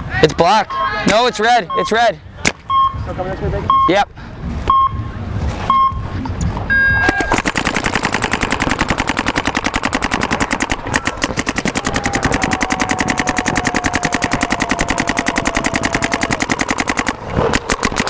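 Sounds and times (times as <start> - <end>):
paintball markers firing rapidly: 7.2 - 18.0.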